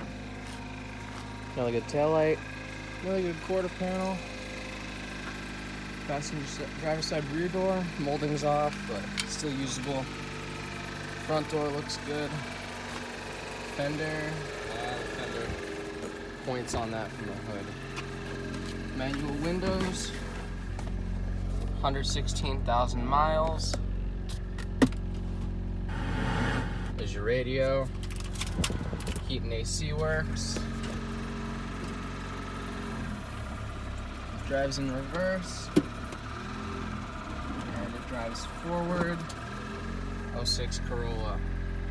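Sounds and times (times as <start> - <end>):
car engine idling: 0.0 - 41.9.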